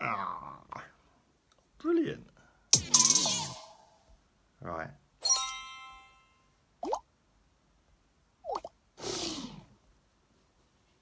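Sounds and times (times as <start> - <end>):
chime ringing: 5.2 - 6.5.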